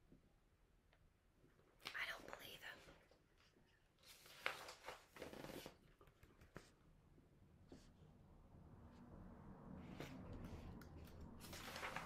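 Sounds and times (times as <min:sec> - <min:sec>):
woman whispering: 0:01.9 - 0:03.1.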